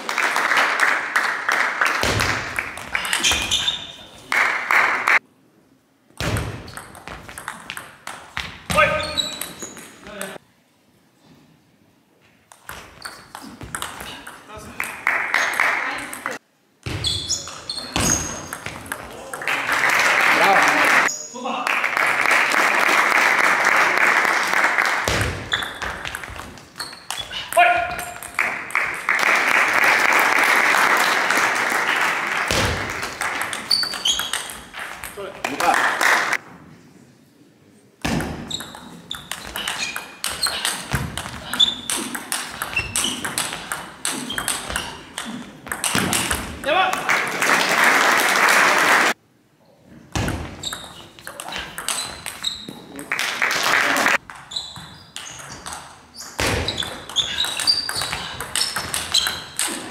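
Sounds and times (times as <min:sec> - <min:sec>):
ball bouncing on table: 0:12.5 - 0:14.4, 0:38.0 - 0:44.9.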